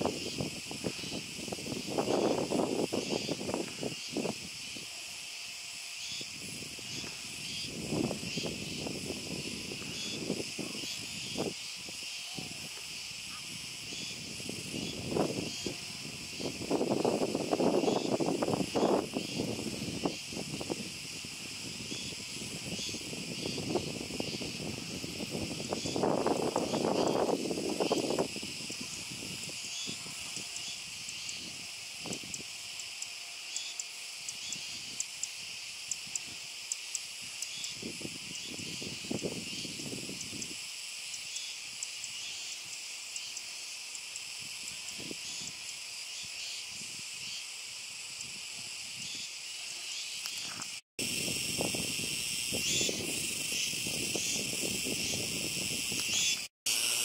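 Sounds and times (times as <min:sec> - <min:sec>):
cicadas calling: 0:00.0 - 0:57.0.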